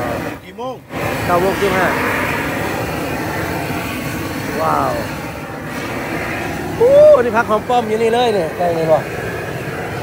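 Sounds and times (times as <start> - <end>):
torch flame rushing: 0.0 - 10.0.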